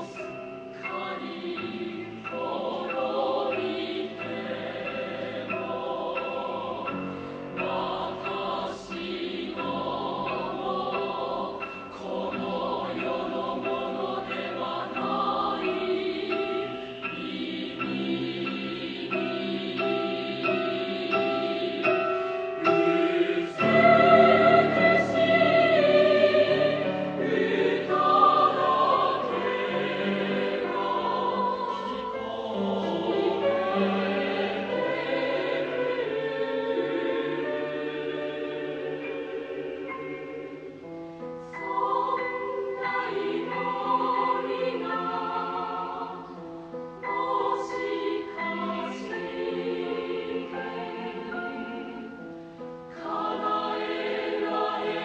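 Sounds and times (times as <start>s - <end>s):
choir singing held chords: 0.0s - 55.0s.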